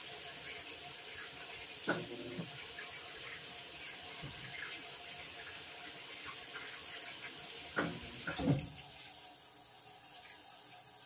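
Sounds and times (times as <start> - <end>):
water running into washer tub: 0.0 - 11.0.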